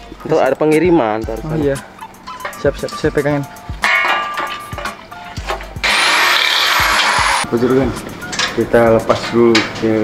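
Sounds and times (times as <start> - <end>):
metal pipes clanking: 2.2 - 5.8
short metallic ring: 3.8 - 4.8
electric drill: 5.8 - 7.4.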